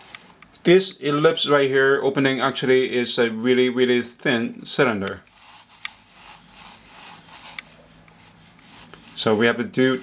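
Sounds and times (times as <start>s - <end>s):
pencil scratching on paper: 5.3s - 10.0s.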